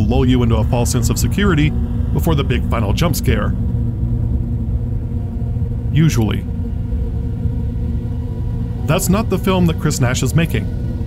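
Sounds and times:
car engine and road noise: 0:00.0 - 0:11.0
faint steady hum: 0:00.0 - 0:11.0.

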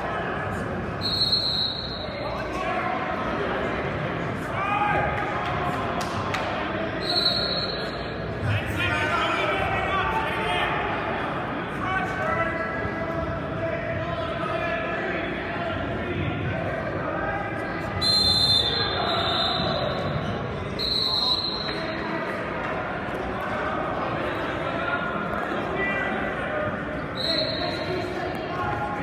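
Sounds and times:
spectators chattering: 0:00.0 - 0:29.0
referee's whistle blast: 0:01.0 - 0:02.2, 0:18.0 - 0:20.1, 0:27.2 - 0:27.9.

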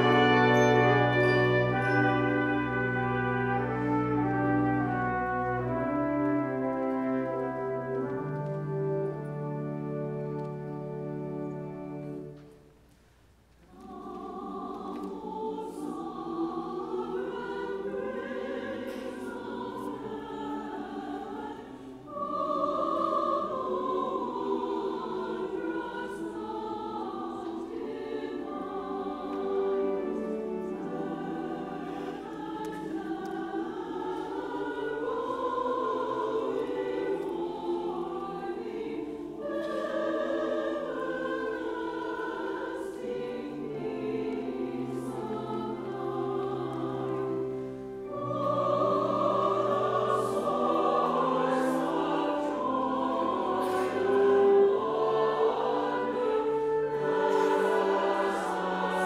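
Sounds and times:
large choir singing: 0:00.0 - 0:12.6, 0:13.6 - 0:59.0.

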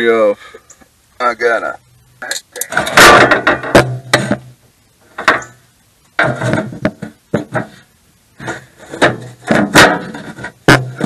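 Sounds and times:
sheet metal panel clattering: 0:02.7 - 0:04.5, 0:06.2 - 0:07.8, 0:08.5 - 0:11.0.

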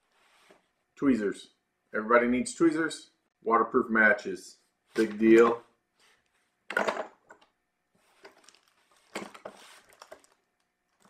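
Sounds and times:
soft rustle of items moved: 0:00.0 - 0:01.0, 0:04.6 - 0:06.6, 0:07.9 - 0:11.0.

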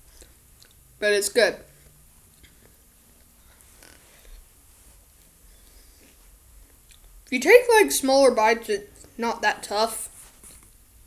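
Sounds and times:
chewing and mouth sounds: 0:06.0 - 0:07.1.

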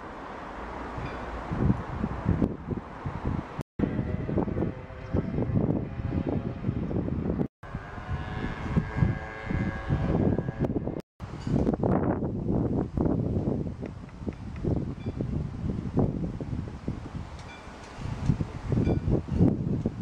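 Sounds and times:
wind buffeting microphone: 0:00.8 - 0:20.0.

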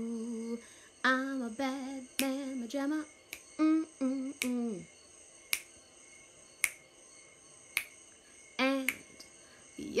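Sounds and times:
finger snaps: 0:02.2 - 0:02.4, 0:03.3 - 0:03.5, 0:04.3 - 0:04.7, 0:05.5 - 0:05.7, 0:06.6 - 0:06.8, 0:07.8 - 0:08.0, 0:08.8 - 0:09.3.

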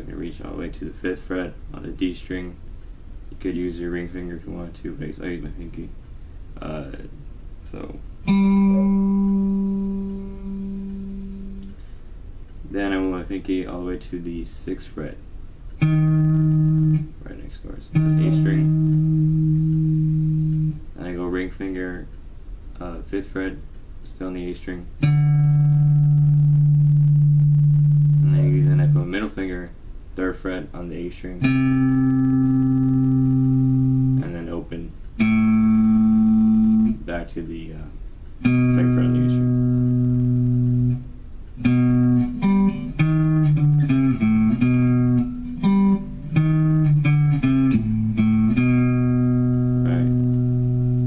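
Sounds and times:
electric guitar note ringing: 0:07.8 - 0:11.9, 0:15.8 - 0:17.2, 0:17.9 - 0:20.9, 0:25.0 - 0:29.4, 0:31.4 - 0:34.5, 0:35.2 - 0:37.1, 0:38.4 - 0:51.0.

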